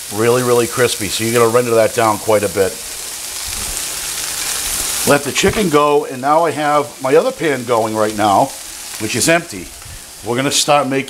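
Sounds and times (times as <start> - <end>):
meat sizzling in oil: 0.0 - 11.0.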